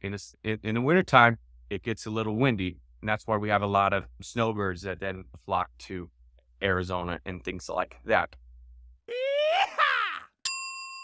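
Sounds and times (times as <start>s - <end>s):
bright bell ding: 10.5s - 11.0s.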